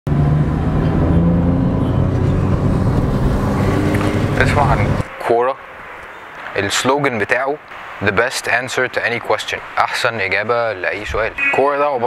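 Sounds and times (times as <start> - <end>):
car engine and road noise: 0.1 - 12.0.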